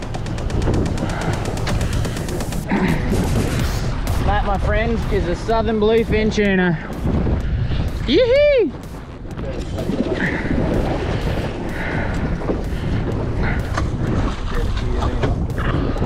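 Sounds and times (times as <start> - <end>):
choppy sea: 0.0 - 16.0
wind buffeting microphone: 0.0 - 16.0
man whooping: 8.0 - 8.8.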